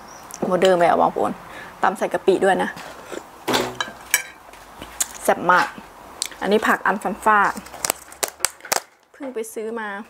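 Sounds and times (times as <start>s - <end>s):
plastic box clicking and crackling: 7.7s - 9.1s.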